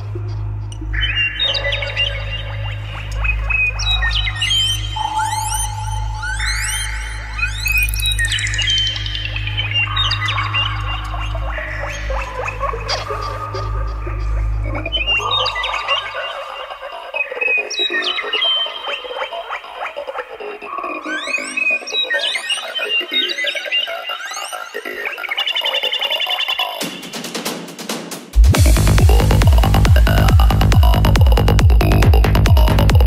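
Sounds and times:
chirping gliding synth sounds: 0.0 - 27.2
low bass pulse: 28.4 - 33.0.

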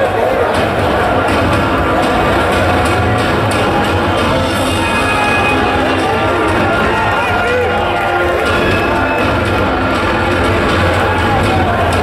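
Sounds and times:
crowd cheering and shouting: 0.0 - 12.0
loud music over loudspeakers: 0.0 - 12.0.

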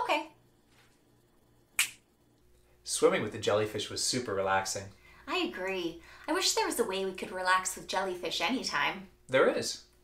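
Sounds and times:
finger snap: 1.7 - 2.1.

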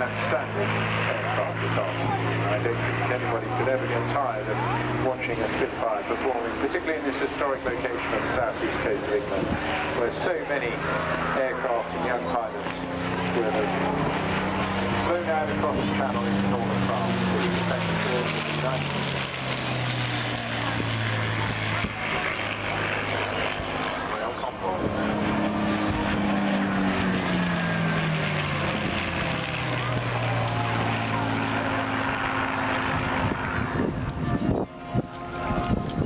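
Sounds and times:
aircraft engine drone passing: 0.0 - 36.0.

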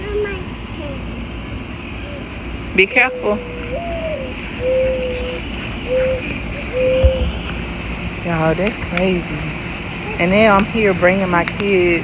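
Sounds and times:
mourning dove cooing: 1.8 - 8.2
wind rumble on microphone: 5.8 - 9.1.

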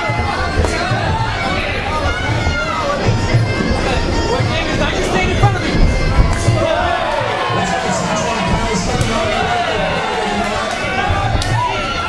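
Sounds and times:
crowd shouting and cheering: 0.0 - 12.0
music playing: 0.0 - 12.0.

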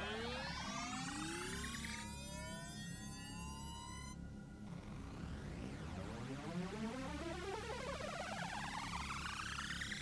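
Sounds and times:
synthesized rising sweep: 4.7 - 10.0.

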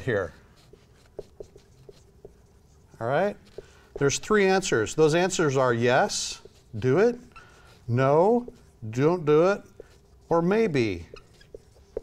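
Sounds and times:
marker squeaking on whiteboard: 0.0 - 12.0.

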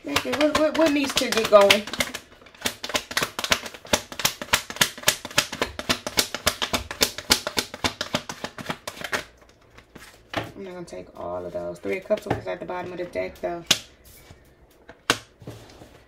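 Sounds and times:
cards shuffled and dealt on table: 0.1 - 10.5.

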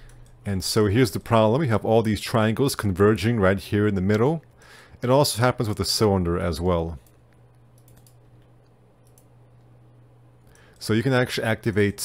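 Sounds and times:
faint low hum: 0.0 - 12.0
man speaking: 0.4 - 4.4, 5.0 - 7.0, 10.8 - 12.0
computer mouse clicks: 7.0 - 9.8.

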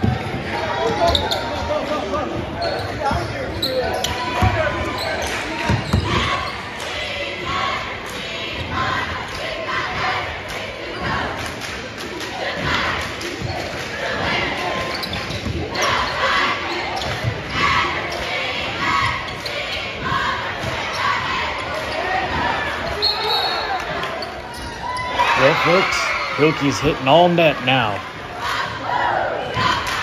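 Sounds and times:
crowd noise: 0.0 - 30.0
voices shouting: 24.6 - 29.8.

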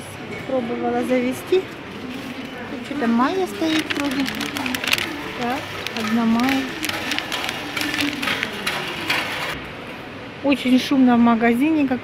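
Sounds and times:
noisy store background: 0.0 - 12.0
plastic sleeves crinkling: 3.2 - 9.6.

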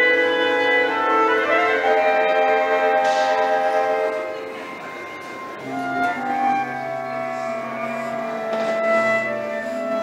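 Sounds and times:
clarinet choir sustained chord: 0.0 - 10.0.

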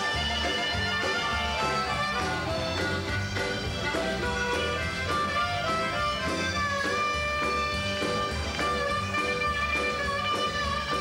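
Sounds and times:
blues harmonica wailing: 0.0 - 11.0
live band playing: 0.0 - 11.0.

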